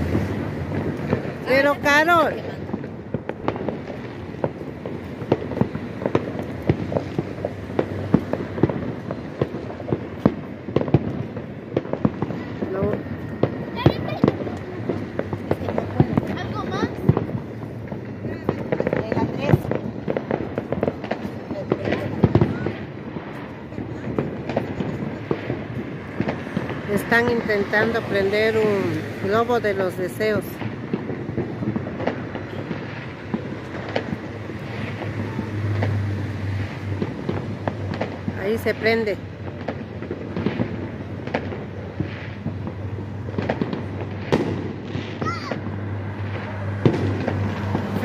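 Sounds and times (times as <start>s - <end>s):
firecrackers crackling: 0.0s - 48.0s
firework bangs: 0.0s - 48.0s
voices talking: 0.8s - 3.0s, 12.2s - 30.7s.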